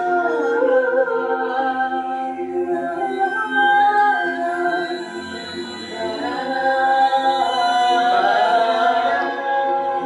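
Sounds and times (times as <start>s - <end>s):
women singing in harmony: 0.0s - 10.0s.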